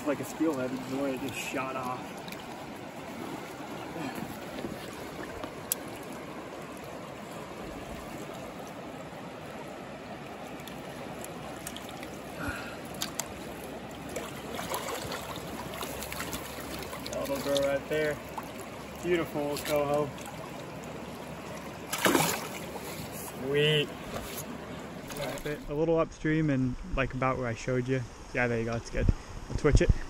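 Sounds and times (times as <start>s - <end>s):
shallow river running: 0.0s - 30.0s.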